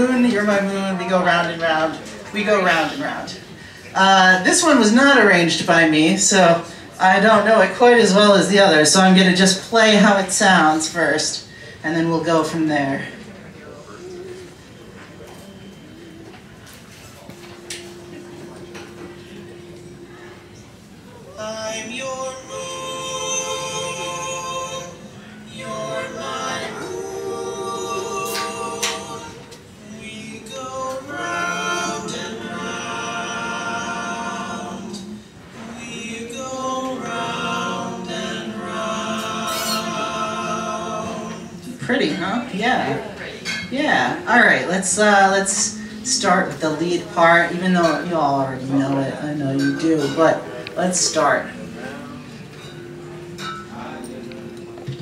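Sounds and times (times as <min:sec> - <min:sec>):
a cappella vocal harmony: 0:21.2 - 0:43.2
barbershop singing from laptop: 0:21.3 - 0:42.2.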